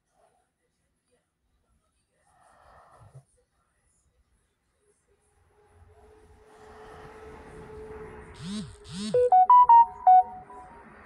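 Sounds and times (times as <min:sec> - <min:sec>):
electronic jingle: 0:09.1 - 0:11.0
short bright synth notes: 0:09.2 - 0:10.9.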